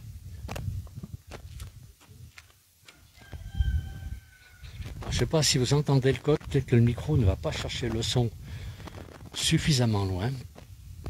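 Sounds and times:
footsteps on paved street: 0:00.5 - 0:03.6
rooster crowing faintly: 0:02.8 - 0:05.1.

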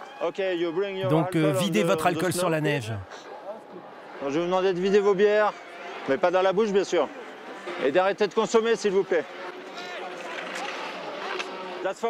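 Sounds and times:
crowd murmur: 0:01.0 - 0:03.2.

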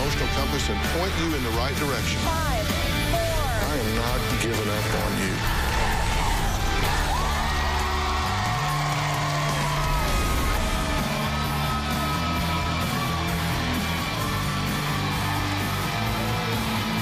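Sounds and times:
theme music with bass and guitar: 0:00.0 - 0:17.0
audience cheering and whooping: 0:05.0 - 0:17.0.

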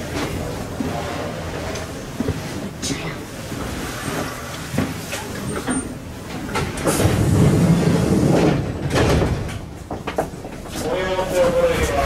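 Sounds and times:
train sliding doors rushing: 0:02.4 - 0:12.0.

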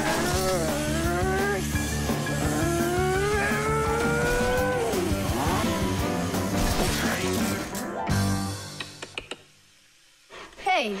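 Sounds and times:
toy car motor revving: 0:00.0 - 0:06.0.

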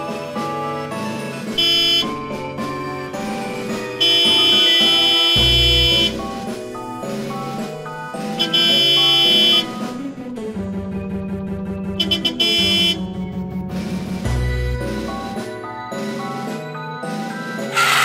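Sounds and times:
background music: 0:00.0 - 0:18.0
truck horn blasts: 0:01.6 - 0:02.3, 0:03.8 - 0:06.5, 0:08.3 - 0:09.9, 0:12.0 - 0:13.2.

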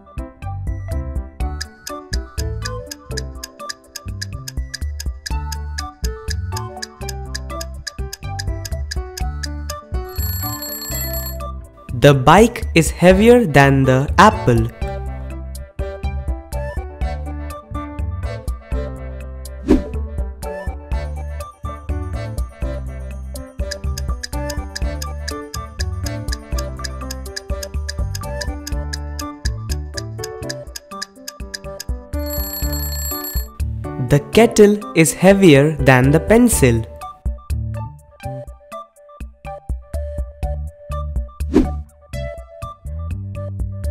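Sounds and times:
background music with bass line: 0:00.0 - 0:10.0, 0:11.6 - 0:32.2, 0:35.5 - 0:43.9
alarm clock ringing: 0:10.0 - 0:11.4, 0:32.2 - 0:33.6.

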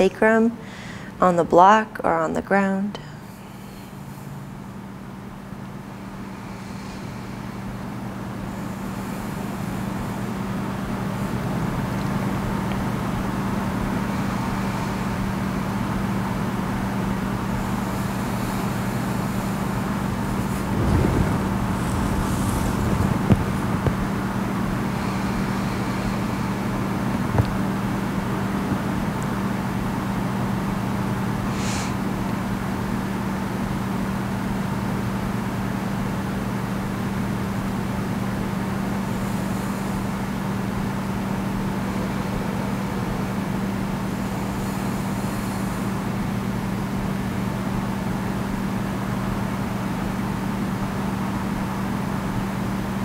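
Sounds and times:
low hum: 0:18.5 - 0:28.8.

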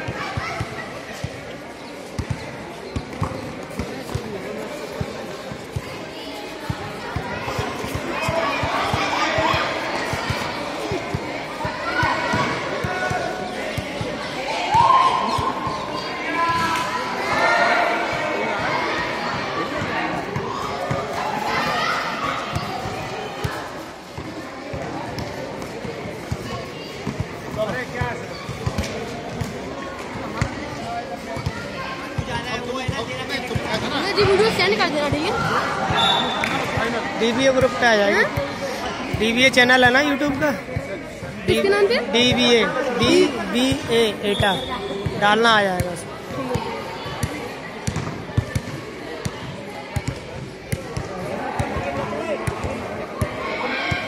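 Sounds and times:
players' voices and calls: 0:00.0 - 0:54.0
basketball bouncing on concrete: 0:47.2 - 0:48.8.

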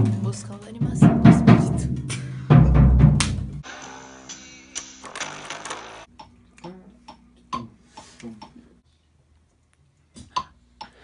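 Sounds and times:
drum hit with cymbal wash: 0:00.0 - 0:04.6.

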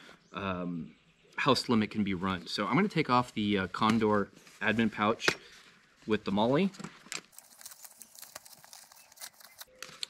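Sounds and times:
small crackles: 0:05.6 - 0:10.0.

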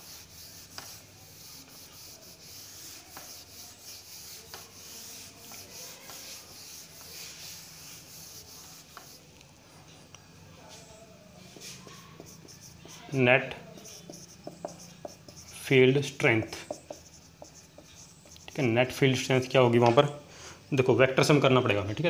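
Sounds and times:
cloth wiping a whiteboard: 0:00.0 - 0:09.3, 0:10.6 - 0:18.8.

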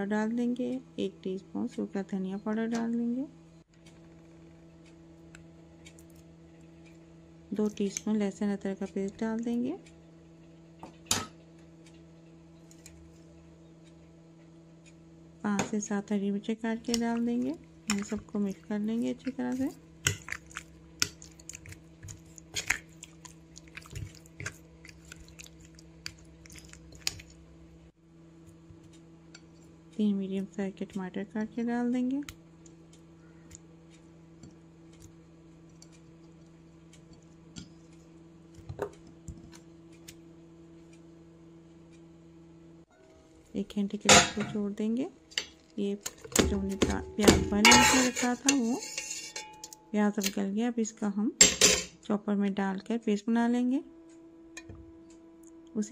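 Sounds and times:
steady low hum: 0:00.0 - 0:55.9
plate clink: 0:47.7 - 0:49.8.

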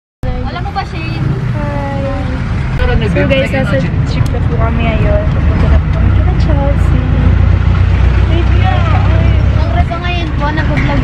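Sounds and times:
girls talking and laughing: 0:00.2 - 0:11.0
vehicle rumble from inside: 0:00.2 - 0:11.0.

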